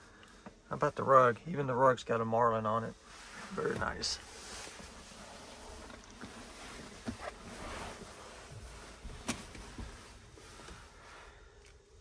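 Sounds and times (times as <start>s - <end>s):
rustling and handling noise: 2.7s - 12.0s.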